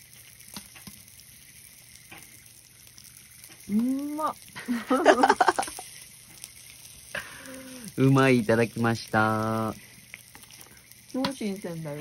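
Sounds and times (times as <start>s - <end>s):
food sizzling in a pan: 0.0s - 12.0s
person humming mm: 3.7s - 4.3s.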